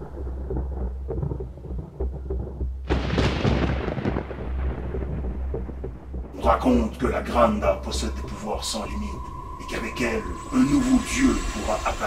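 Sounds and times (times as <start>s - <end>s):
thunder clap: 0.0s - 12.0s
thunder rumbling: 0.0s - 12.0s.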